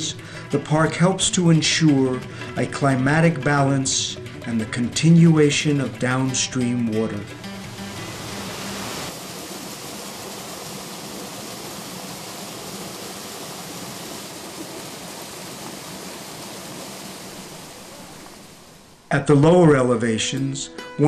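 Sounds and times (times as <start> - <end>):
river rushing over rocks: 7.5 - 19.1.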